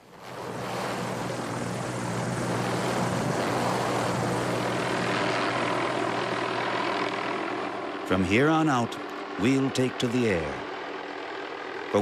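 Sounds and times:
helicopter rotor drone: 0:00.0 - 0:12.0.

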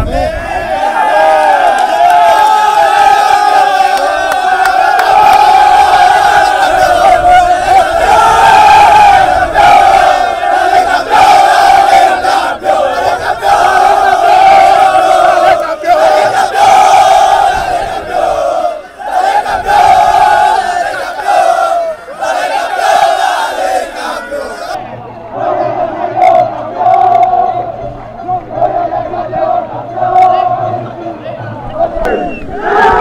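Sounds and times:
players shouting chant in unison: 0:00.0 - 0:33.0.

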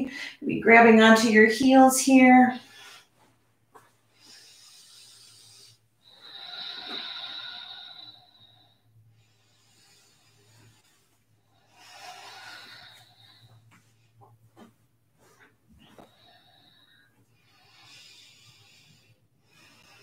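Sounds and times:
person breathing deeply: 0:04.1 - 0:14.2, 0:15.8 - 0:20.0.

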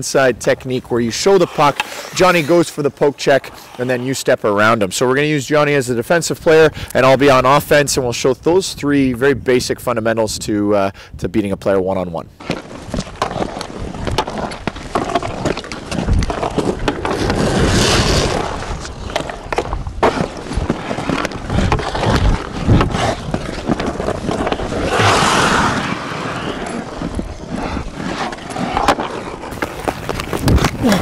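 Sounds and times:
skate blades scraping on ice: 0:00.2 - 0:05.4, 0:12.4 - 0:31.0
sticks clicking on puck: 0:01.1 - 0:04.0, 0:18.4 - 0:24.8, 0:26.5 - 0:31.0.

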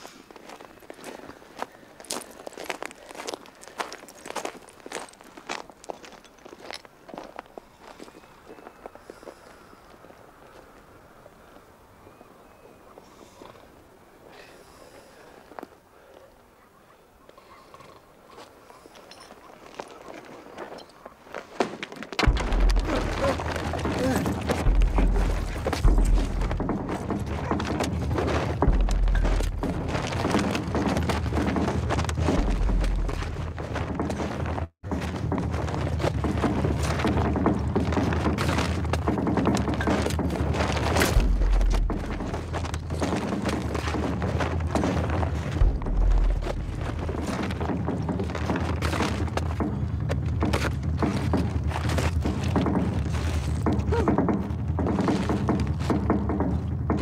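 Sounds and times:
thuds: 0:21.6 - 0:57.0.

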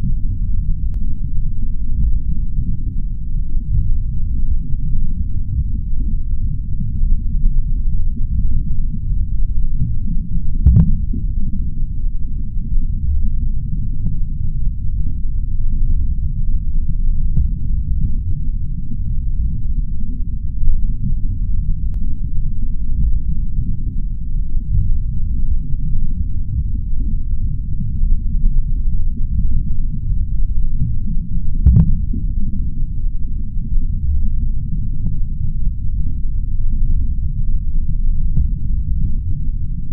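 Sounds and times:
low muffled throbbing: 0:00.0 - 0:39.9.

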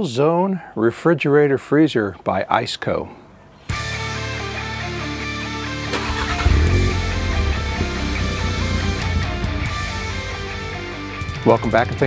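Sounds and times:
rock music with electric guitar: 0:03.7 - 0:12.0
car engine starting and rumbling: 0:05.7 - 0:10.9.

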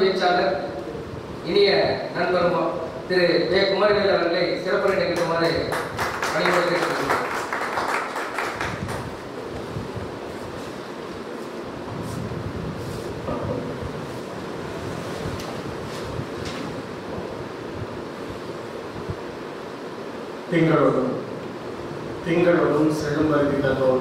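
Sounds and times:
room noise hiss: 0:00.0 - 0:24.0
audience applause: 0:05.7 - 0:09.2.

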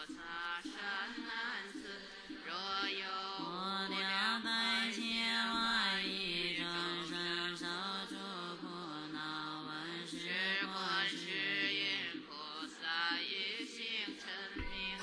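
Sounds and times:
melodic chanting: 0:00.0 - 0:15.0.

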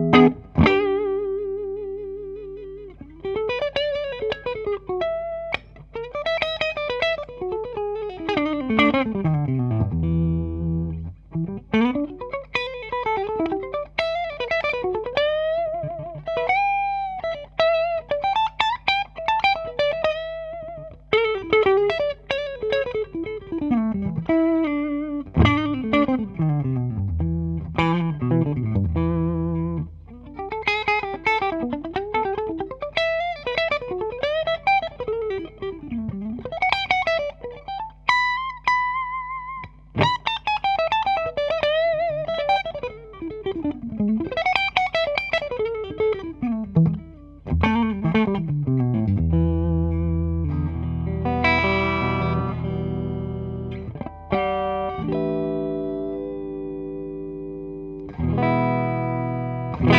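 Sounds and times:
clean electric guitar solo: 0:00.0 - 0:59.9.

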